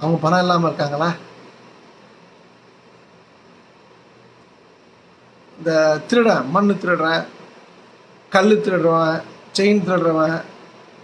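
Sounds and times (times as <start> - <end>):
faint room tone hiss: 0.0 - 11.0.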